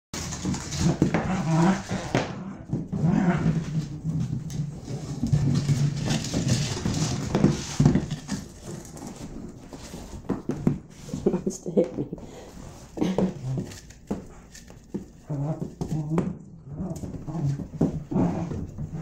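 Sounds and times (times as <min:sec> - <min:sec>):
dog growling: 0:00.8 - 0:03.9, 0:15.2 - 0:19.0.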